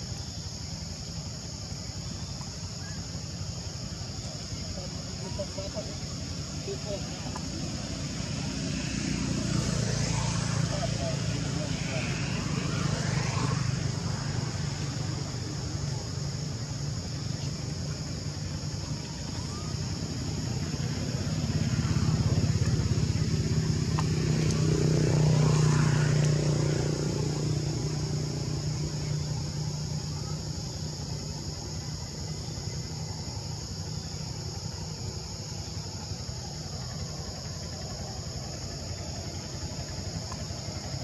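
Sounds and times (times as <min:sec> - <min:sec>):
insects buzzing: 0:00.0 - 0:41.0
vehicle engine passing by: 0:07.0 - 0:17.1, 0:19.5 - 0:31.4.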